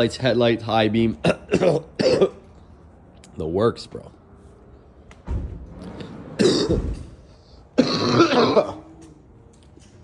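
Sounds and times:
man coughing: 0:01.2 - 0:02.5, 0:06.4 - 0:07.1, 0:07.8 - 0:08.9.

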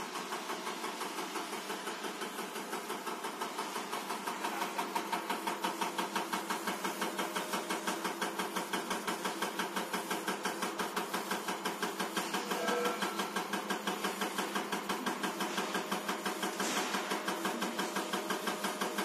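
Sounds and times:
machine hum: 0:00.0 - 0:19.0
injector pulsing rapidly: 0:00.8 - 0:19.0.

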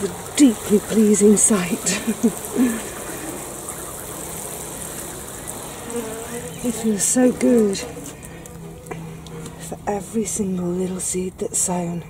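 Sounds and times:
water showering from watering can: 0:00.0 - 0:10.4.

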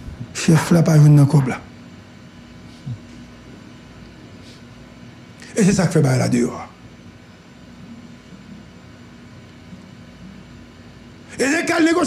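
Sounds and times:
faint low hum: 0:00.0 - 0:12.0
steady background noise: 0:00.0 - 0:12.0.

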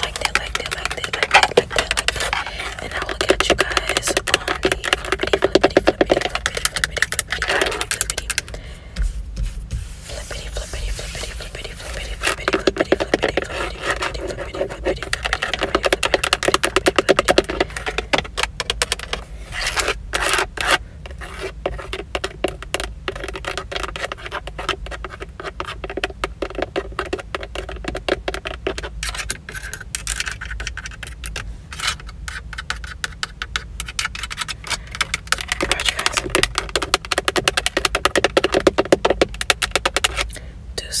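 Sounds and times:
fingernails tapping on steering wheel: 0:00.0 - 0:19.2, 0:21.1 - 0:29.4, 0:32.6 - 0:40.2.

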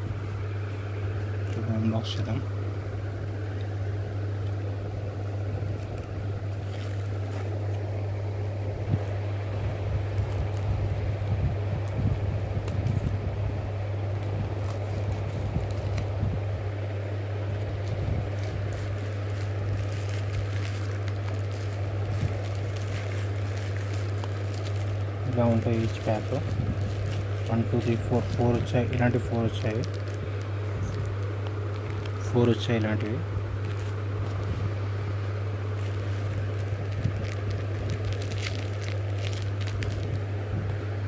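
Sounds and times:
steady low hum: 0:00.0 - 0:41.0
plastic mailer crinkling: 0:04.3 - 0:13.2, 0:13.9 - 0:40.4.

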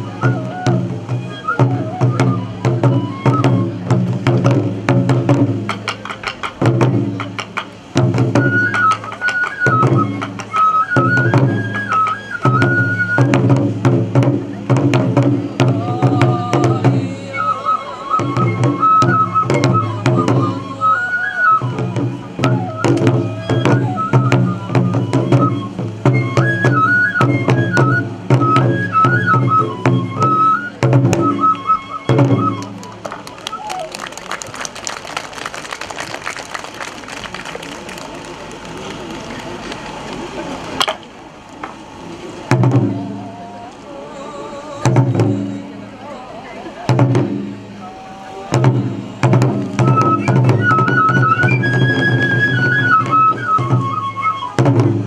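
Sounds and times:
bamboo flute melody: 0:00.0 - 0:55.0
barrel drums beating: 0:00.2 - 0:17.1, 0:21.6 - 0:33.2, 0:42.5 - 0:43.2, 0:48.5 - 0:55.0.

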